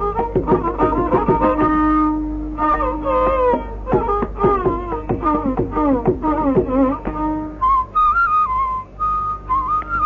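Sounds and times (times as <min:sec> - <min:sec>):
bamboo flute melody: 0:00.0 - 0:10.0.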